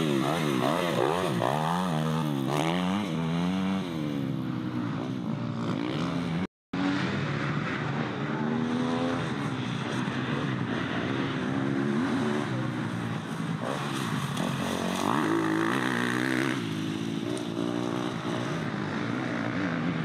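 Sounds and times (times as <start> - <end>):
dirt bike engines revving: 0.0 - 20.0.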